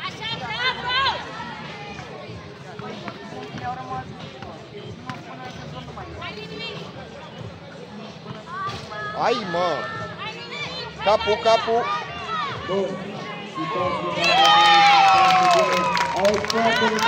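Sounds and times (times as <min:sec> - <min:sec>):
background chatter: 0:00.0 - 0:17.0.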